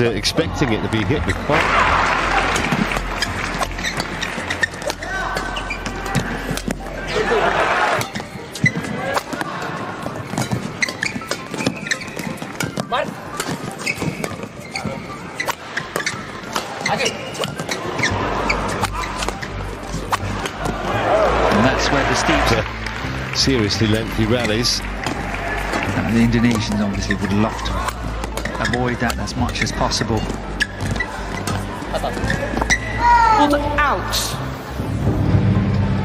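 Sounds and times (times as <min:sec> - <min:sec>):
crowd cheering: 0:00.4 - 0:08.1, 0:20.2 - 0:27.8
shoes squeaking on court: 0:02.5 - 0:21.0, 0:24.4 - 0:33.6
racket hitting shuttlecock: 0:10.3 - 0:14.8.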